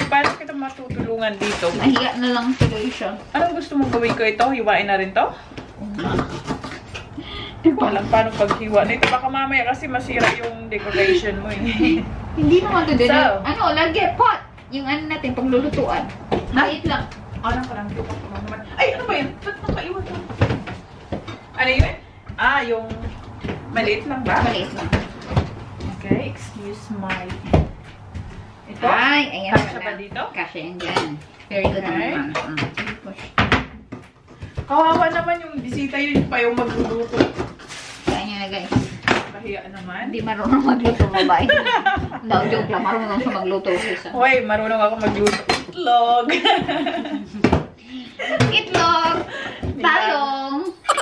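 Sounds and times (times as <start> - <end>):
kitchen knocks and clatter: 0.0 - 5.1, 7.9 - 10.7, 14.6 - 42.8, 44.9 - 45.8, 46.4 - 47.7
woman talking: 0.0 - 6.6, 7.2 - 20.6, 21.6 - 23.1, 23.7 - 25.1, 25.8 - 27.5, 28.7 - 33.3, 49.8 - 51.0
woman speaking: 7.2 - 20.6, 50.0 - 51.0.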